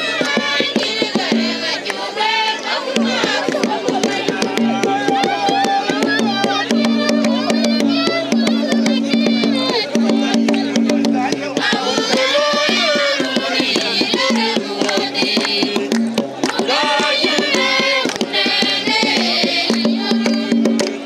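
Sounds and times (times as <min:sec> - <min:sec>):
group singing: 0:00.0 - 0:21.0
hand drum beating: 0:00.0 - 0:21.0
hand claps: 0:00.2 - 0:02.1, 0:02.9 - 0:08.8, 0:12.0 - 0:21.0.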